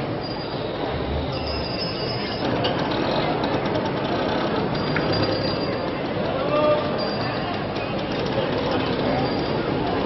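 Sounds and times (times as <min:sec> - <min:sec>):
crowd noise: 0:00.0 - 0:10.0
traffic: 0:00.0 - 0:10.0.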